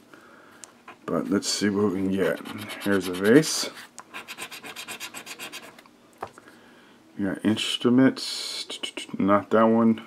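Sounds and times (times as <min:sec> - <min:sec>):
lottery ticket being scratched: 0:01.1 - 0:05.8.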